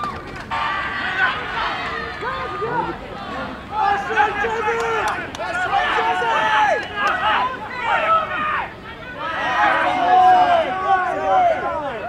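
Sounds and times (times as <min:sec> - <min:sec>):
people shouting and yelling: 0:00.0 - 0:12.0.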